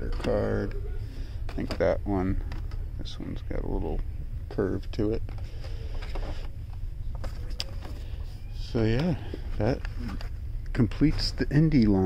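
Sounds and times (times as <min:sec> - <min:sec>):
low store rumble: 0:00.0 - 0:12.0.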